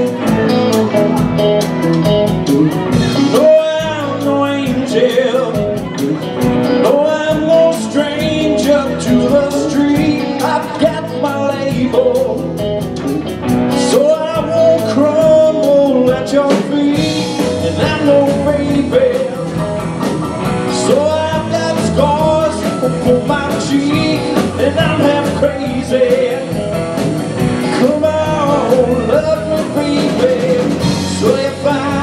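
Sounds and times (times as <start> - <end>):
blues rock band playing: 0.0 - 32.0
melodic lead line: 0.0 - 32.0.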